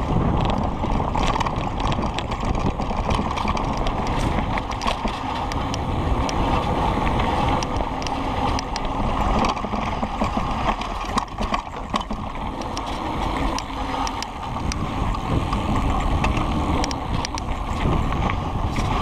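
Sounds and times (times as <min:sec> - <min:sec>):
bike clicks and rattles: 0:00.0 - 0:19.0
bike tyres rolling over dirt: 0:00.0 - 0:19.0
wind buffeting microphone: 0:00.0 - 0:19.0.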